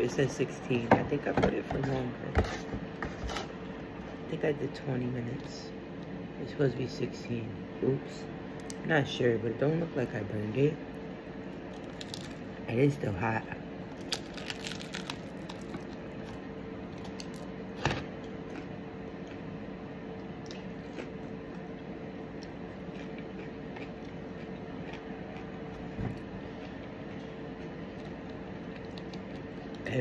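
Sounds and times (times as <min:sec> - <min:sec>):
low room hum: 0:00.0 - 0:30.0
person chewing crisp food: 0:11.6 - 0:12.5, 0:13.9 - 0:17.5, 0:18.1 - 0:29.9.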